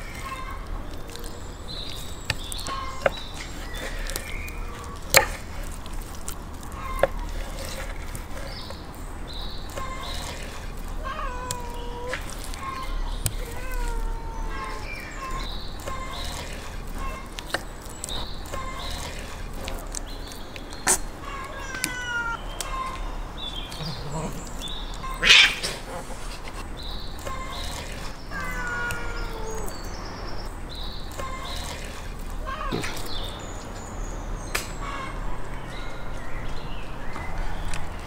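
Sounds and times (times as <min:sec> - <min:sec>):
cats meowing: 0:00.0 - 0:01.6, 0:06.6 - 0:08.3, 0:09.7 - 0:17.4, 0:20.9 - 0:26.2, 0:27.2 - 0:30.5, 0:31.1 - 0:33.4.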